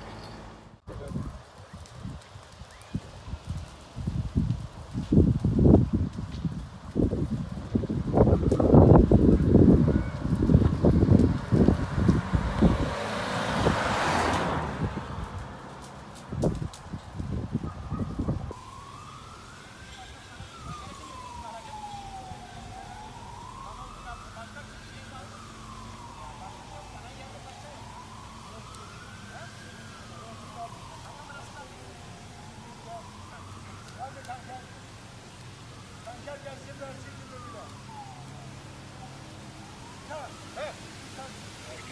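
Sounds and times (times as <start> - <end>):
wailing emergency siren: 0.9 - 41.9.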